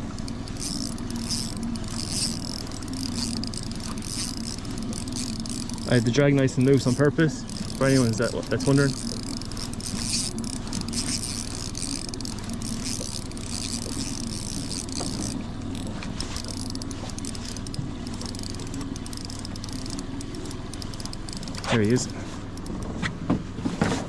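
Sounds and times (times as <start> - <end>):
boat motor humming: 0.0 - 24.0.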